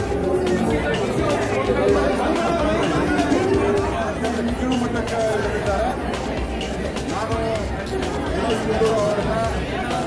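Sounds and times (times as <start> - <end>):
background chatter: 0.0 - 10.0
people talking: 0.0 - 10.0.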